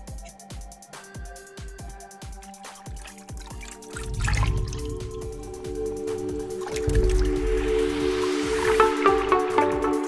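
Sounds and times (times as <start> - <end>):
water splash and drips: 1.7 - 9.9.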